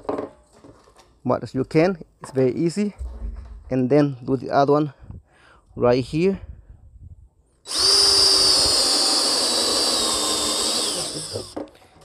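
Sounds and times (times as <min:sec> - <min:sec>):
cordless drill whining through plastic: 0:07.6 - 0:11.7.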